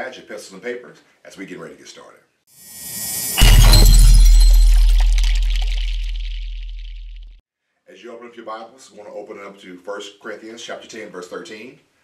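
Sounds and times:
crash-like impact with boom: 2.7s - 7.3s.

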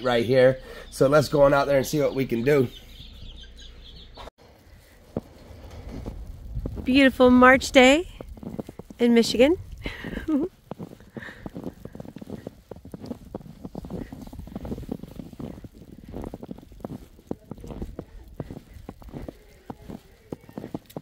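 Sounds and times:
low rumble: 4.4s - 20.5s
footsteps crunching through snow: 4.4s - 21.0s.

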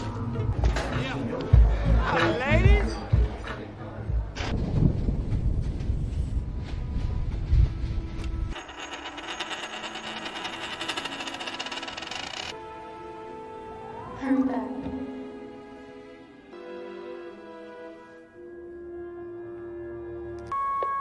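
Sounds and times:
metal ring spinning and rattling: 8.5s - 12.6s.

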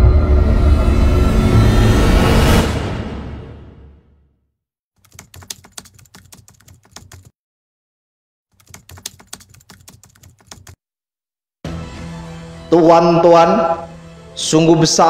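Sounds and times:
music: 0.0s - 4.4s, 11.6s - 15.0s
rapid keyboard key clicks: 5.0s - 7.3s, 8.6s - 10.8s.

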